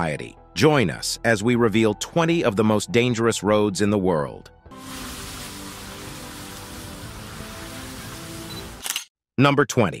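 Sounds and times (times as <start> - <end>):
background music with held notes: 0.0 - 8.8
rushing rain-like hiss: 4.8 - 8.8.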